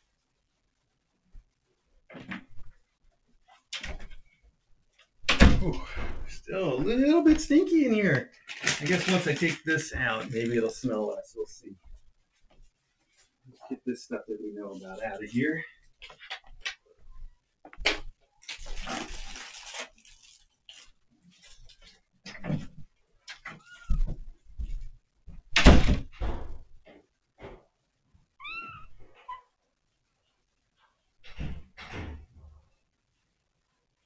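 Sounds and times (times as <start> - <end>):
knocks and rustling of items: 5.1 - 11.0
kitten meowing: 28.4 - 29.4.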